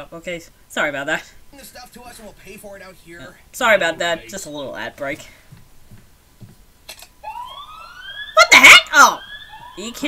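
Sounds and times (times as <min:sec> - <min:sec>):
siren wailing upward: 0:07.2 - 0:10.0.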